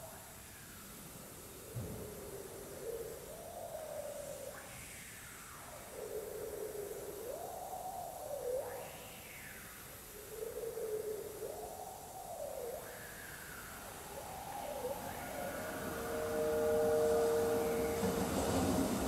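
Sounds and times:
wavering swooping wind instrument tones: 11.6 - 19.0
two steady held tones: 12.9 - 19.0.

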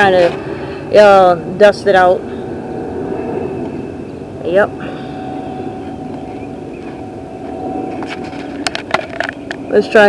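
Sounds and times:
vehicle engine droning: 0.0 - 10.0.

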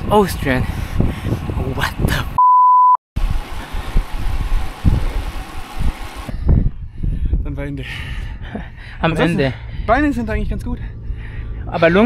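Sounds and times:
wind buffeting microphone: 0.0 - 2.4, 3.2 - 11.7.

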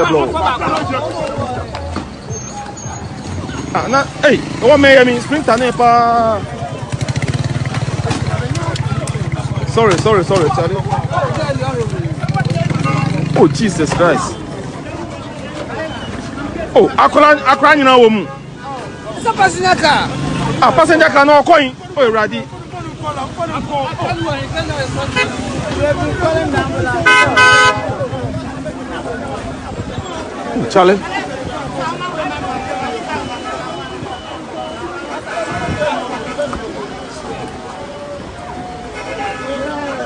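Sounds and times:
street noise: 0.0 - 40.0
voices: 0.0 - 40.0
vehicle horn honking: 25.0 - 25.5, 27.0 - 28.0, 38.9 - 40.0.

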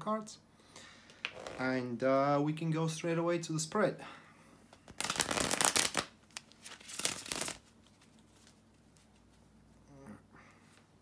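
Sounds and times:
cards riffle-shuffled: 4.9 - 9.3.

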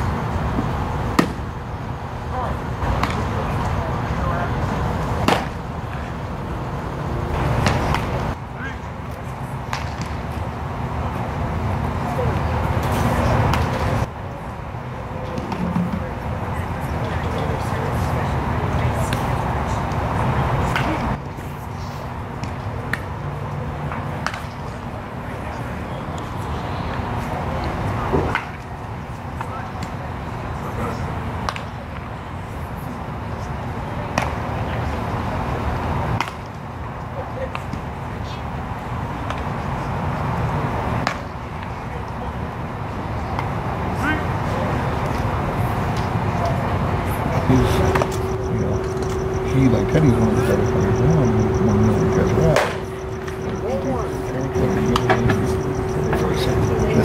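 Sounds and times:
faint murmur of voices: 0.0 - 57.0
indistinct voices: 45.5 - 57.0
steady low hum: 46.9 - 57.0.

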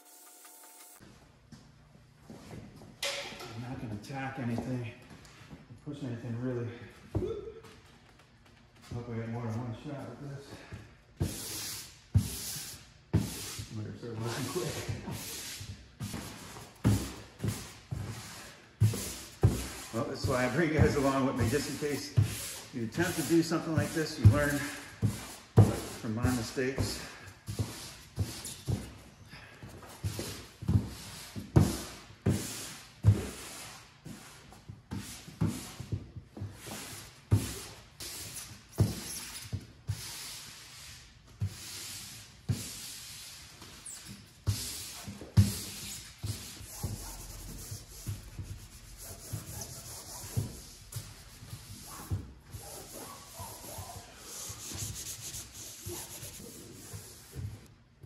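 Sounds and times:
vinyl banner rubbing and swishing: 11.3 - 27.0, 36.5 - 57.7.

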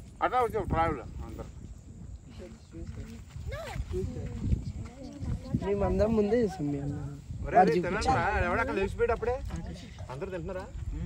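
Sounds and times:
people's voices: 0.2 - 11.0.

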